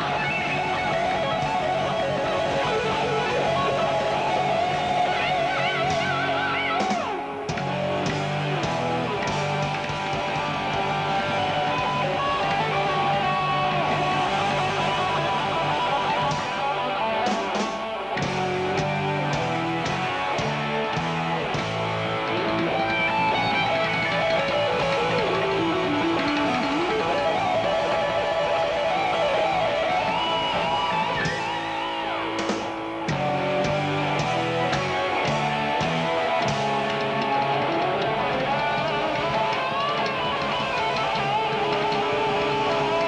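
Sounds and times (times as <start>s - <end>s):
electric guitar solo with bent notes: 0.0s - 43.0s.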